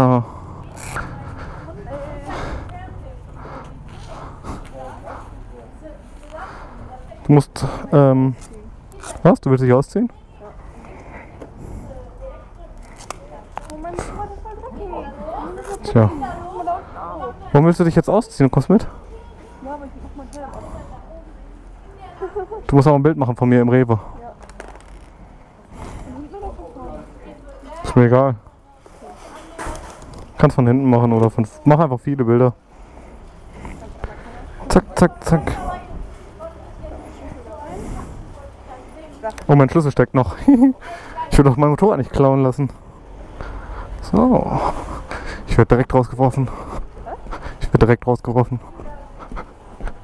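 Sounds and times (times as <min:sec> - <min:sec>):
helmet clicks and rustle: 0:24.4 - 0:25.2.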